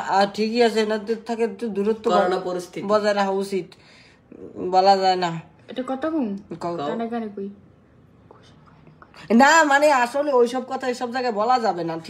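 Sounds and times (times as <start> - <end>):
person speaking: 1.6 - 3.1.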